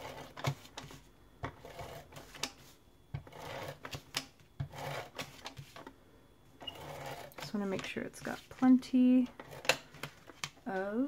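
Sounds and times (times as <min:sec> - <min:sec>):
tape dispenser whirring: 0:03.2 - 0:05.9, 0:06.6 - 0:07.9, 0:09.3 - 0:10.4.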